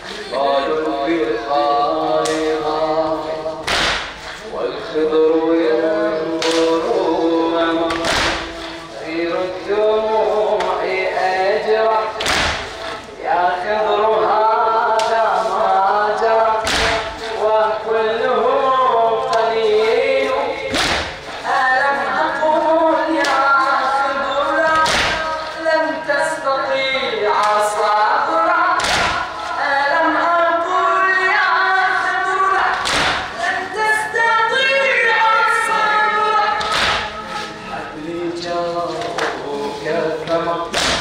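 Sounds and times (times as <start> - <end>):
man chanting into a microphone: 0.0 - 41.0
crowd beating chests: 3.6 - 4.4, 7.8 - 8.9, 12.0 - 13.0, 16.6 - 17.5, 20.6 - 21.5, 24.6 - 25.6, 28.7 - 29.6, 32.7 - 33.4, 36.5 - 37.6, 40.7 - 41.0.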